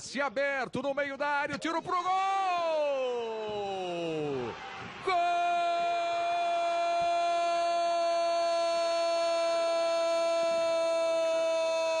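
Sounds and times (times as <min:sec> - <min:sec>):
commentator shouting goal cry: 0:00.2 - 0:12.0.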